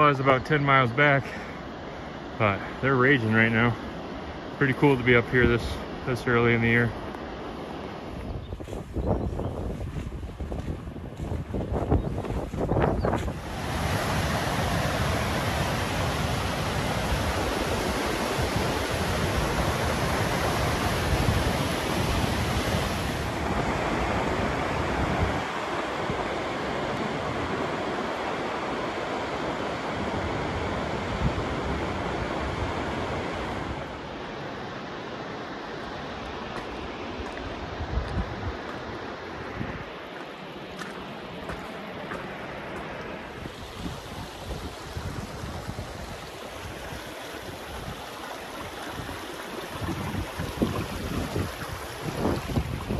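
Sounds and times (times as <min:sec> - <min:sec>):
wind buffeting microphone: 0:08.1 - 0:27.9, 0:36.6 - 0:39.9, 0:42.8 - 0:52.9.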